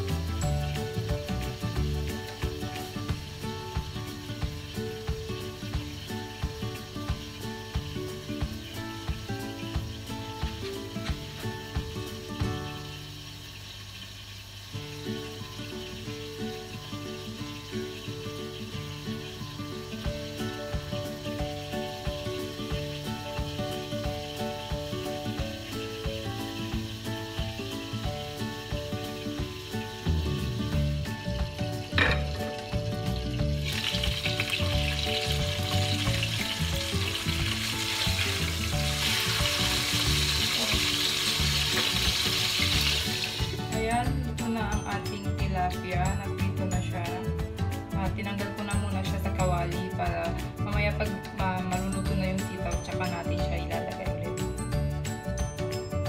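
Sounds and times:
background music: 0:00.0 - 0:13.4, 0:14.8 - 0:56.0
fish sizzling in hot oil: 0:00.0 - 0:55.9.

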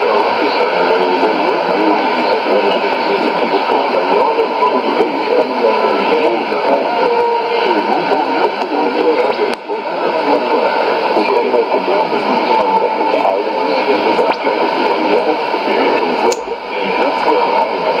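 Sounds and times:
radio speech: 0:00.0 - 0:18.0
static hiss: 0:00.0 - 0:18.0.

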